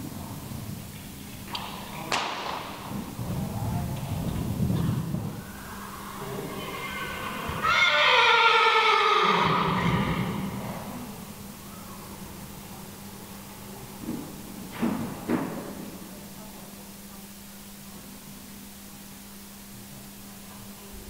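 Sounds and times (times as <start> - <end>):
horse neighing: 5.5 - 11.2.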